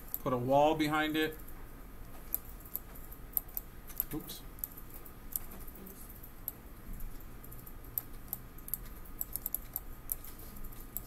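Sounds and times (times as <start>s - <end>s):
low steady hum: 0.0s - 11.0s
keyboard and mouse clicks: 2.1s - 11.0s.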